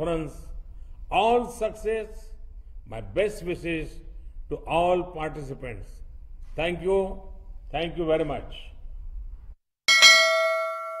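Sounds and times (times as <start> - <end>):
low room hum: 0.0 - 9.6
bright bell-like chime: 9.9 - 11.0.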